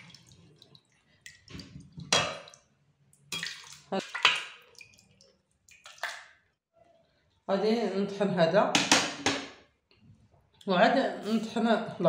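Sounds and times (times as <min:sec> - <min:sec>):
liquid sloshing: 0:00.0 - 0:06.5.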